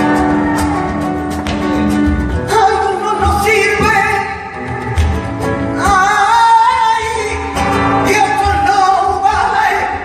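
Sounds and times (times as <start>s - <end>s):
woman singing flamenco: 2.2s - 10.0s.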